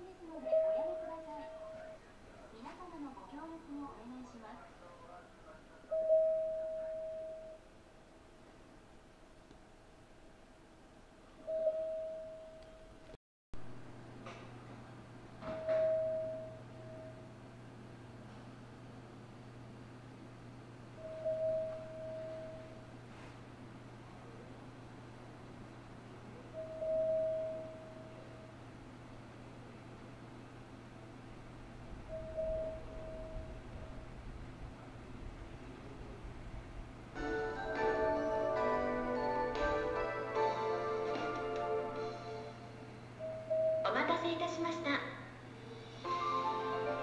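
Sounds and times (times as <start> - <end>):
steady low hum: 0.0 - 47.0
single-pitched chime: 11.5 - 12.9, 15.5 - 17.2.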